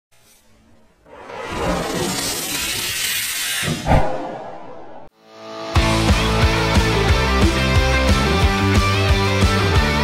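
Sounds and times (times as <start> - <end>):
whoosh of ether igniting: 1.1 - 5.1.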